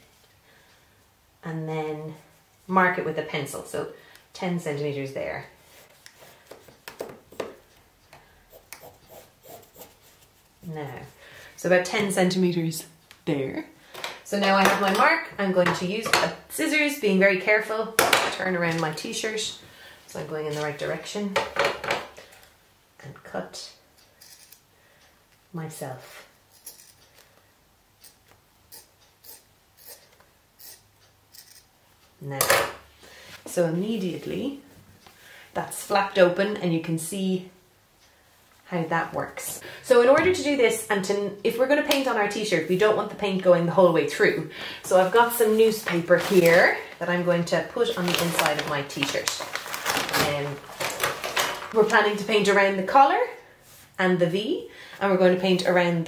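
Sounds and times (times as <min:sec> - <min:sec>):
scissors cutting fabric: 0:28.0 - 0:31.7.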